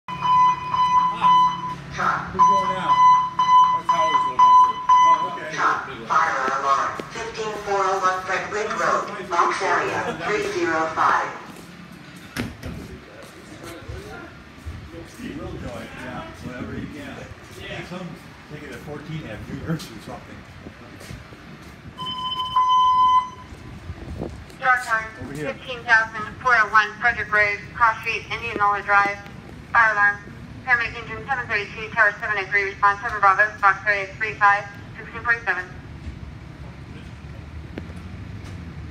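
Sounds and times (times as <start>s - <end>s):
high electronic beeping: 0.1s - 5.5s, 22.0s - 23.6s
voices: 0.5s - 22.3s, 24.5s - 35.9s.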